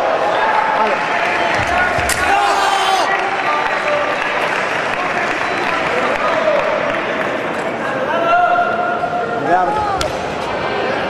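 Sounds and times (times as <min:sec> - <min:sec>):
spectators applauding: 0:00.4 - 0:07.5.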